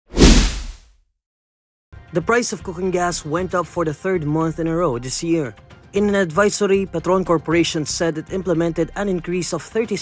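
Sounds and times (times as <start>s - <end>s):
whoosh sound effect: 0.1s - 0.8s.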